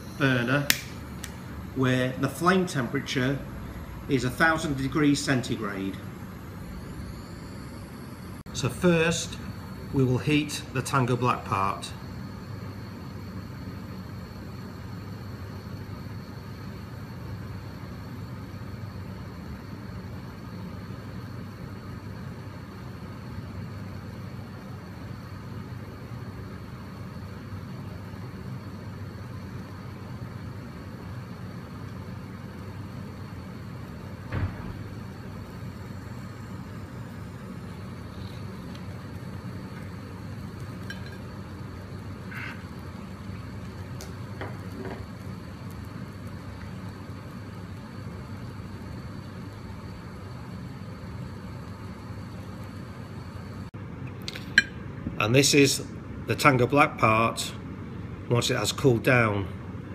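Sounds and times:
low background hum: 0.0s - 59.9s
gas torch lighting click: 0.6s - 1.5s.

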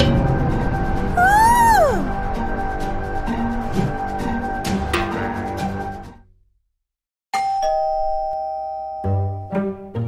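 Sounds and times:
two-tone doorbell chime: 7.4s - 9.6s.

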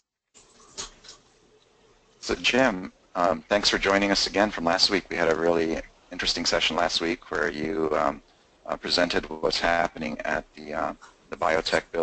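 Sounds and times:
faint line hiss: 0.4s - 12.0s.

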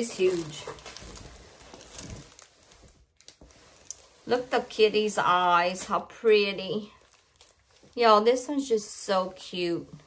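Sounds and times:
canvas rustling: 0.0s - 6.0s.

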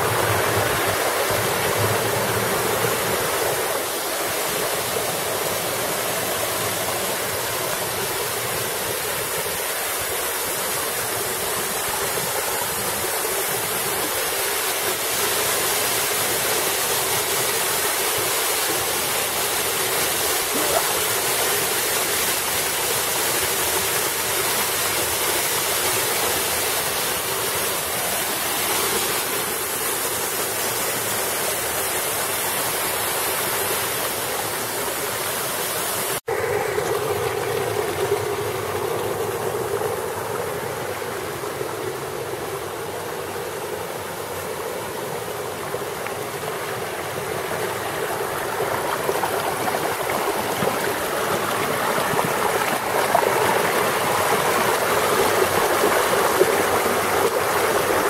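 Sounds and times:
waterfall rushing over boulders: 0.0s - 58.0s.

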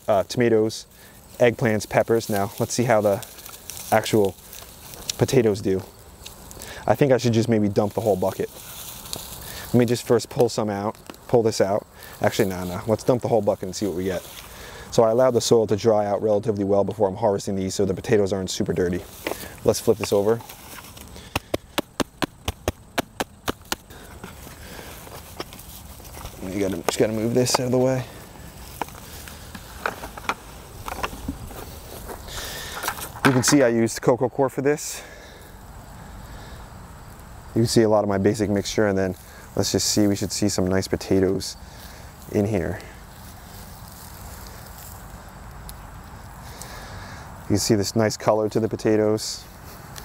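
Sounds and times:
dry potting soil rustling and crumbling: 0.0s - 36.3s, 36.9s - 50.0s
hand slapping plastic bucket: 21.2s - 23.8s.

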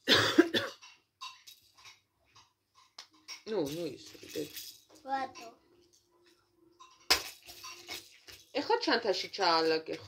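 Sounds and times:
person coughing: 0.0s - 0.8s.

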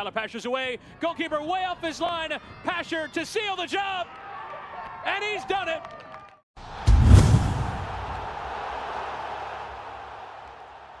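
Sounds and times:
deep hit: 6.8s - 8.2s.

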